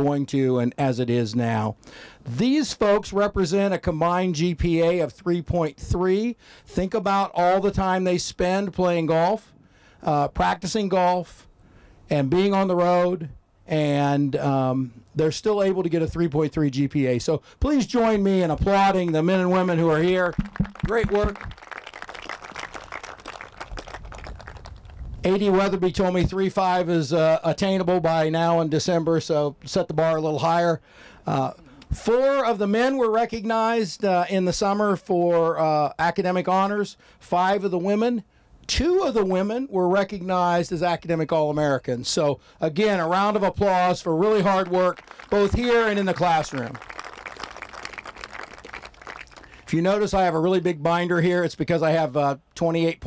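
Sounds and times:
small crowd applauding: 19.0 - 25.0, 44.3 - 49.7.

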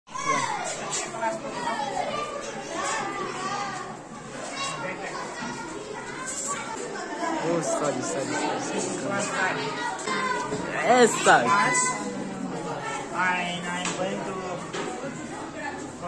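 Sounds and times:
children chattering and calling out: 0.1 - 16.0.

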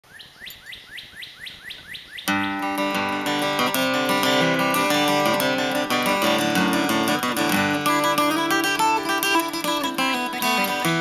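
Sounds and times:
songbird whistling rising notes: 0.1 - 2.8.

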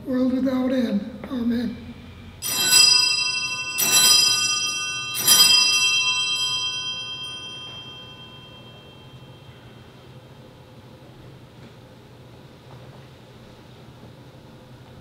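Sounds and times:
sacristy bell ringing: 2.4 - 10.4.

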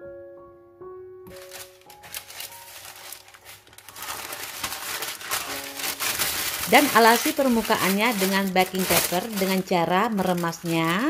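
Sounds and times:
faint background music: 1.1 - 11.0
baking paper crumpling: 1.3 - 11.0.

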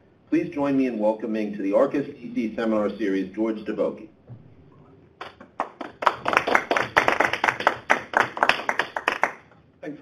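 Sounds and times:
audience applauding: 5.2 - 9.5.

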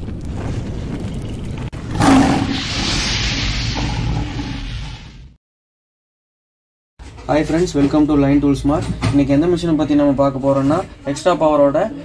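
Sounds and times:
loud rushing burst: 0.0 - 5.4.

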